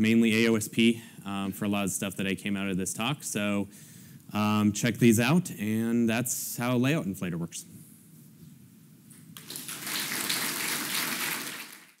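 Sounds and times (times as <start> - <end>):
audience applause: 9.4 - 12.0.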